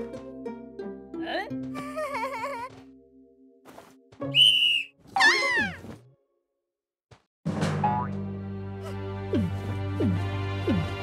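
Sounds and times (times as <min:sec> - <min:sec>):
high whistle-like tone: 0:04.3 - 0:04.9.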